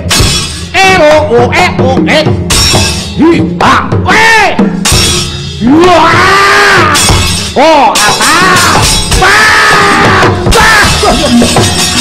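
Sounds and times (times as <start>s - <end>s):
gamelan music: 0.0s - 0.8s, 4.8s - 5.8s, 7.0s - 9.2s, 10.4s - 12.0s
vocal cries: 5.6s - 12.0s.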